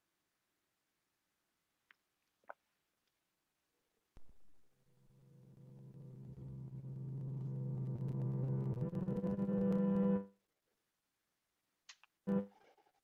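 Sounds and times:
sustained synthesizer drone: 0:04.8 - 0:10.3, 0:12.3 - 0:12.5.

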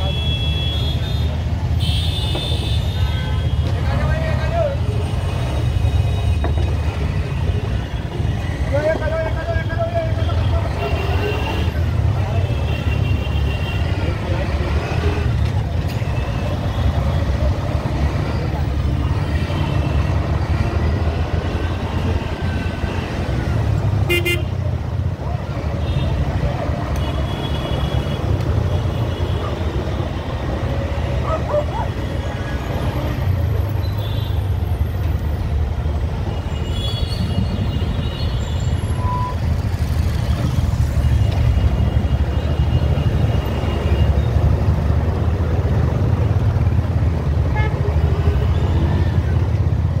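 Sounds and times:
low rumble of traffic engines: 0:00.0 - 0:50.0
vehicle horns honking: 0:24.0 - 0:24.6.

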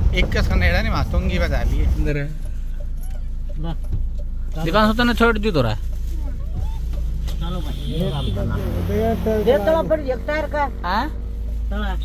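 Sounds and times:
car engine and road noise: 0:00.0 - 0:12.0.

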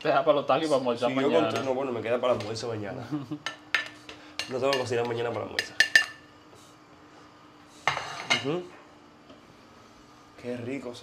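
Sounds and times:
utensil clinking on frying pan: 0:05.6 - 0:06.2.

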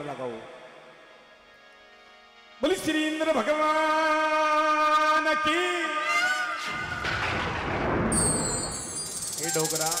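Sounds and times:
man calling into microphone: 0:09.3 - 0:10.0.

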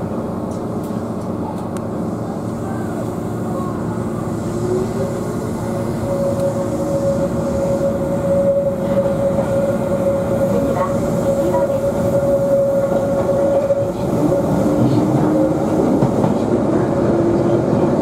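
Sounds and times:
electric train running noise: 0:00.0 - 0:18.0
train motor whine: 0:02.6 - 0:16.0.

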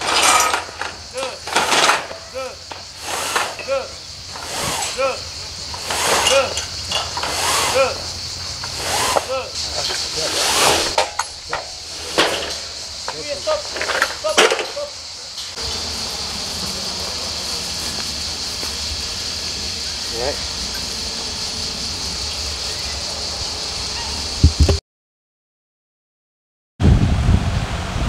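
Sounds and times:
insects chirring: 0:00.0 - 0:24.8
outdoor hiss: 0:00.0 - 0:24.8
people shouting: 0:02.3 - 0:02.6, 0:09.2 - 0:09.6.

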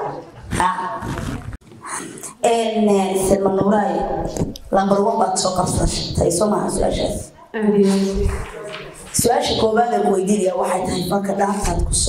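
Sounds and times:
woman speaking into a microphone: 0:02.2 - 0:12.0.

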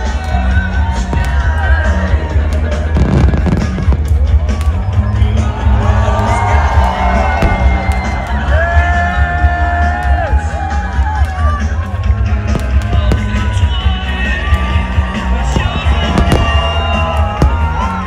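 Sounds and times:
fireworks banging and crackling: 0:00.0 - 0:04.9, 0:07.1 - 0:08.2, 0:12.2 - 0:18.0.

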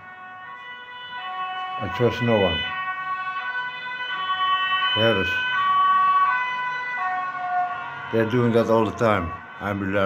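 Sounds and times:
distant two-tone siren: 0:00.0 - 0:10.0.

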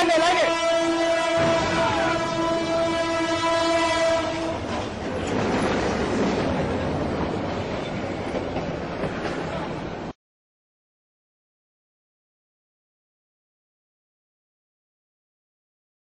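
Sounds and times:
diesel locomotive horn: 0:00.0 - 0:05.0.

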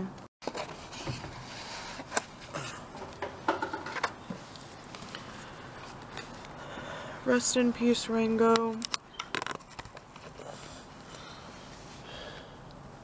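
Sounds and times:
cardboard and paper rustling: 0:00.4 - 0:03.1.

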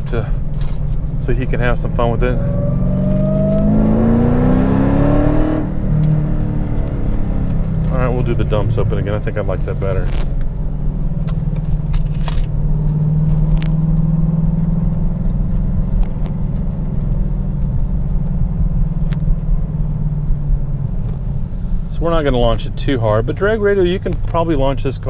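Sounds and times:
car engine running deep: 0:00.0 - 0:25.0.

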